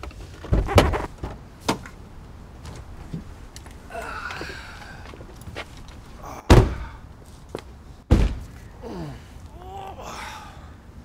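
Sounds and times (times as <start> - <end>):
car door slamming: 6.5 - 7.0, 8.1 - 8.5.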